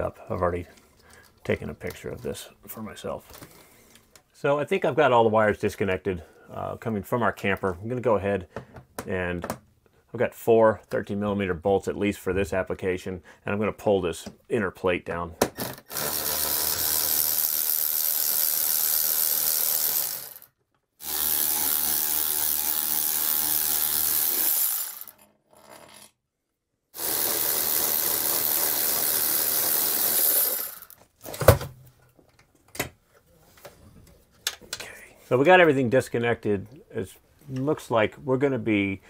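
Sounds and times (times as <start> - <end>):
cordless ratchet spinning: 15.6 - 25.2, 27.0 - 31.0.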